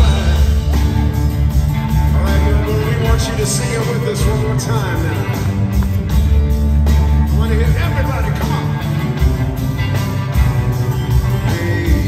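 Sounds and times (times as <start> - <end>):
acoustic guitar: 0.0 - 12.0
bass guitar: 0.0 - 12.0
drums: 0.0 - 12.0
electric guitar: 0.0 - 12.0.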